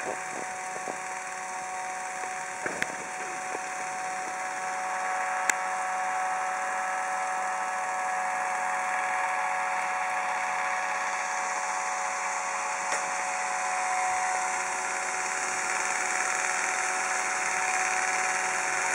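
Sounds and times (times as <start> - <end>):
electric fan motor whirring: 0.0 - 18.9.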